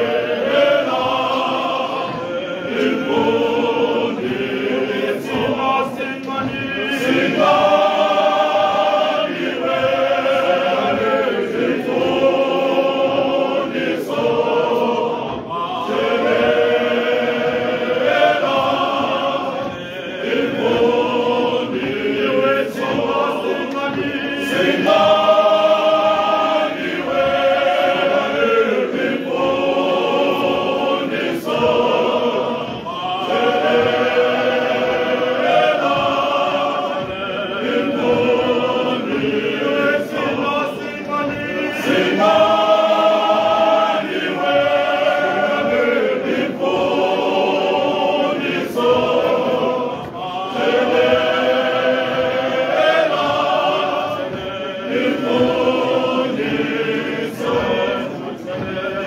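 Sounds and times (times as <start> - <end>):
male choir singing a cappella: 0.0 - 59.0.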